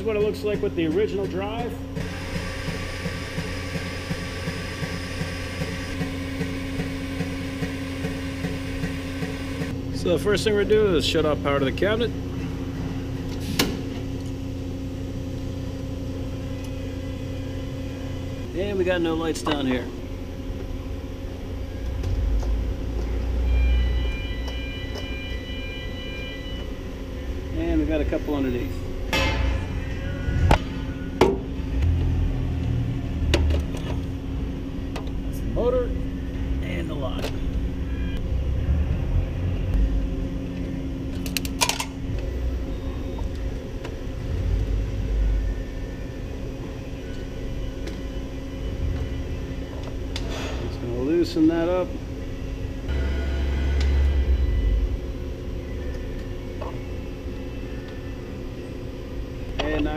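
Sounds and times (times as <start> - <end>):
low hum: 2.8 - 51.2, 51.8 - 59.6.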